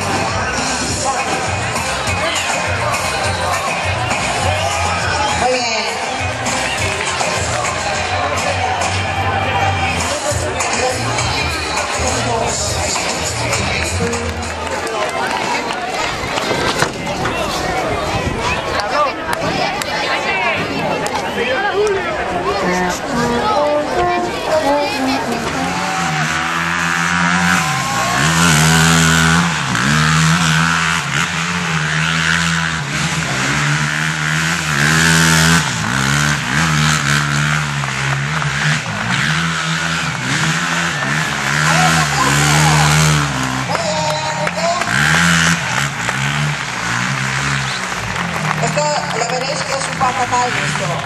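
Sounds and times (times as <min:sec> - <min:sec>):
quad bike engine revving: 0:00.0 - 0:17.8, 0:22.4 - 0:51.0.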